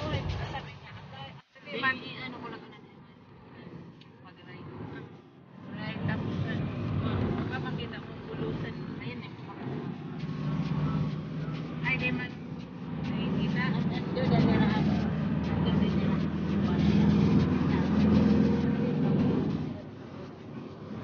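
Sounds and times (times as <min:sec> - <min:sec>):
indistinct voices: 0:00.0 - 0:21.0
vehicle engine and road noise: 0:00.0 - 0:21.0.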